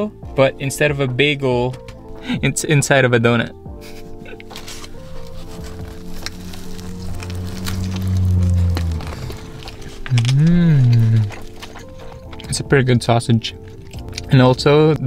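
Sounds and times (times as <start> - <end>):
background music: 0.0 - 15.0
man humming while eating: 10.1 - 11.4.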